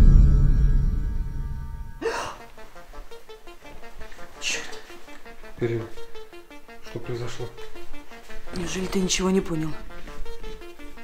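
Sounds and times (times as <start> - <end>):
low dark horror music: 0.0 - 2.4
faint soft music notes: 0.0 - 11.0
woman gasping: 2.0 - 2.5.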